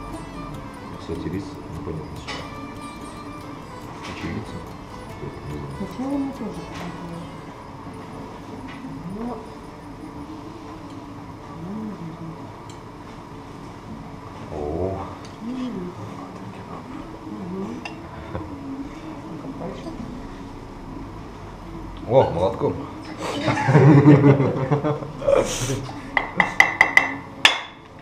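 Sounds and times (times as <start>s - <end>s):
crockery clinking: 0.0s - 9.9s.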